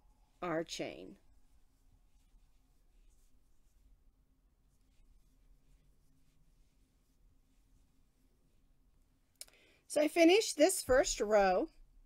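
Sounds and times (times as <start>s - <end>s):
faint room hum: 0.0s - 12.0s
woman's voice: 0.4s - 1.2s, 9.9s - 11.8s.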